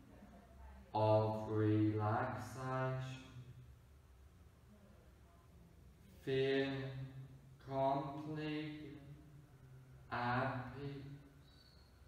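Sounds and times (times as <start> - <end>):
man speaking in low monotone: 0.9 - 3.6, 6.2 - 11.4.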